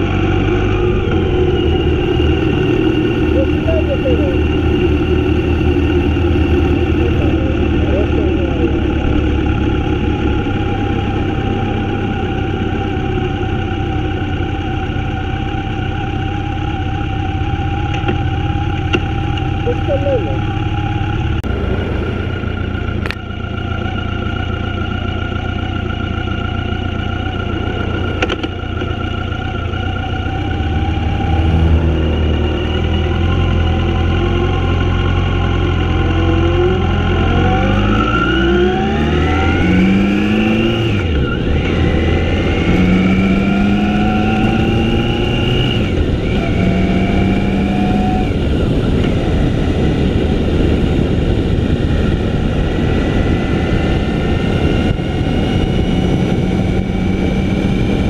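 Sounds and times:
motorcycle engine accelerating: 0.0s - 58.0s
road noise: 0.0s - 58.0s
wind noise: 36.6s - 58.0s.

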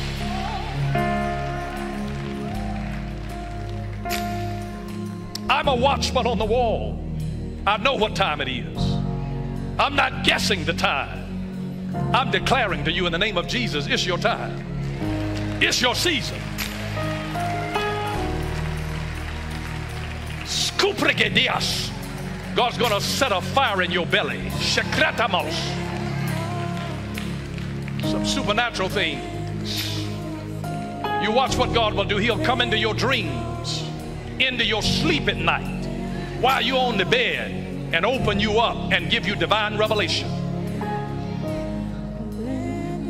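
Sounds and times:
worship band slow chords: 0.0s - 43.0s.

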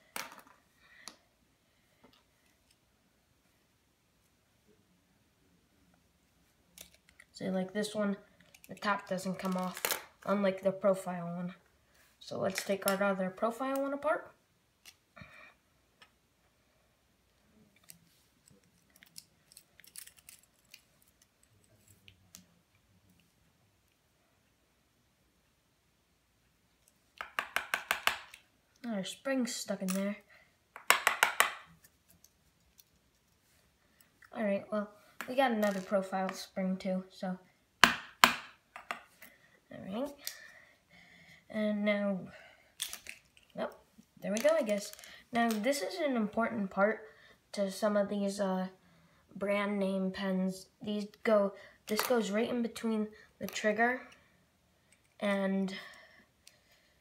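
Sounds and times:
plastic parts tapping on wood floor: 27.2s - 28.4s, 30.8s - 31.7s.

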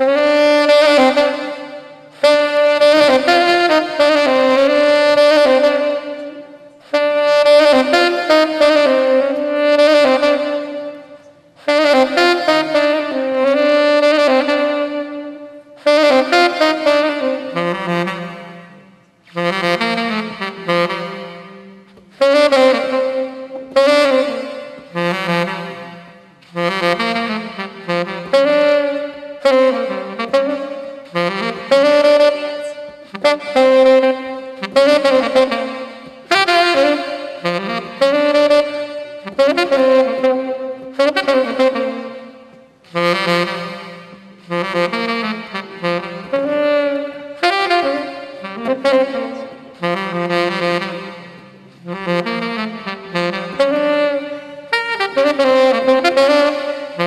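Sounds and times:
saxophone jazz melody: 0.0s - 57.0s.

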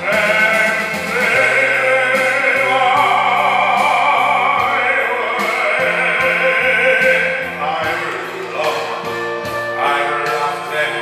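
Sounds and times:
electronic keyboard accompaniment: 0.0s - 11.0s
man singing with vibrato: 0.0s - 11.0s.

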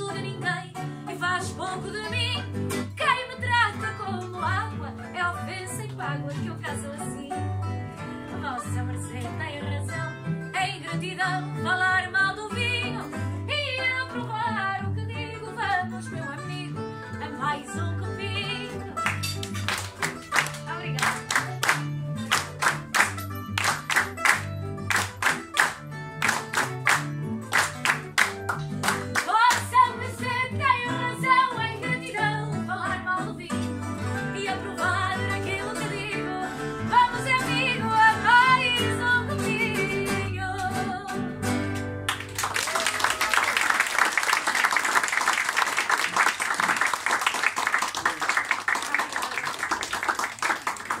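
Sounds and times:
plucked guitars: 0.0s - 42.6s
audience applause: 19.4s - 29.3s, 42.1s - 51.0s.

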